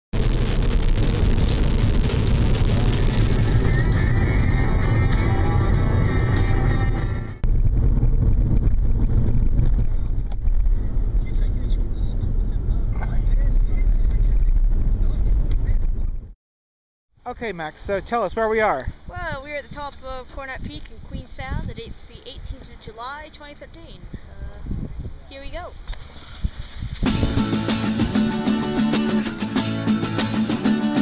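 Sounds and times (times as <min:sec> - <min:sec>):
music: 0:03.4 - 0:07.4, 0:27.0 - 0:31.0
vehicle driving on gravel: 0:07.4 - 0:16.2.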